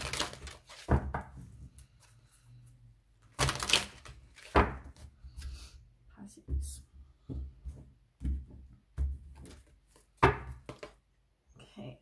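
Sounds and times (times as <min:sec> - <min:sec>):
cards knocking on wooden table: 0:07.3 - 0:11.0.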